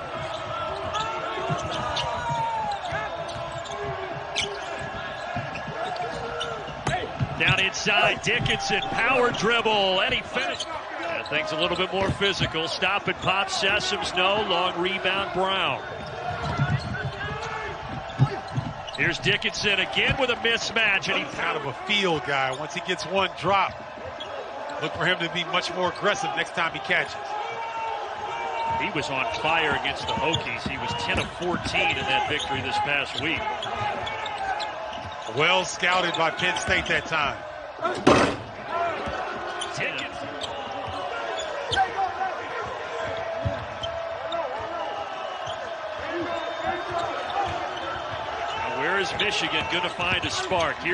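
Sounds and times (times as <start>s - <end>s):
players' voices: 0.0s - 50.9s
basketball bouncing on hardwood: 0.1s - 6.2s, 16.0s - 19.0s
sneaker squeaks: 0.1s - 9.1s, 15.8s - 20.1s, 28.4s - 37.1s, 39.0s - 42.1s, 43.0s - 50.8s.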